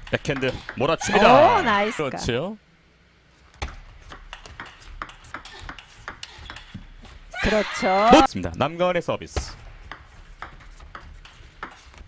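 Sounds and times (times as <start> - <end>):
ping pong ball clicking: 4.1 - 6.7.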